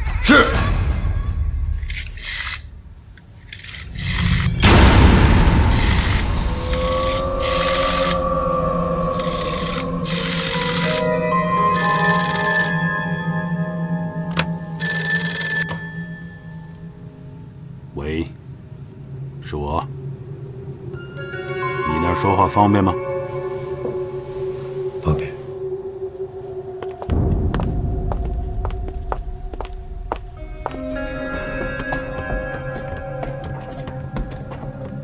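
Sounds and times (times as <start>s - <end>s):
dramatic background music: 0.0s - 35.0s
telephone bell ringing: 11.4s - 13.9s, 14.8s - 16.6s.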